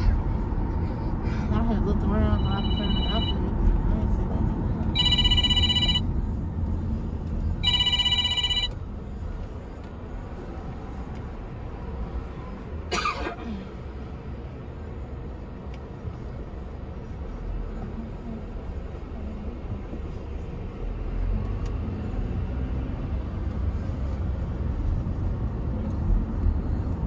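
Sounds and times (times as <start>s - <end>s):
road noise inside car: 0.0s - 27.0s
electronic ring: 2.4s - 3.4s, 5.0s - 6.0s, 7.6s - 8.7s.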